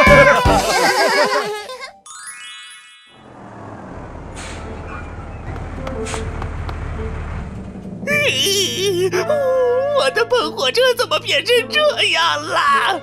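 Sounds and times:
low cartoon vehicle rumble: 3.2 - 10.0
short hisses: 4.4 - 4.8
low music bed: 4.7 - 13.0
wobbling voice-like wail: 8.1 - 10.0.

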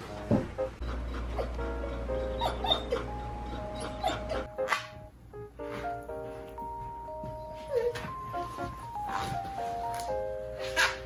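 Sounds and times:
background music: 0.0 - 11.0
puppy whimpering: 2.2 - 4.5, 7.4 - 8.2.

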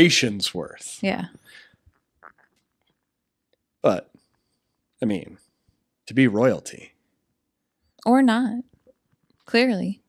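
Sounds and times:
man speaking: 0.0 - 1.6, 3.8 - 4.0, 5.0 - 5.4, 6.1 - 6.9.

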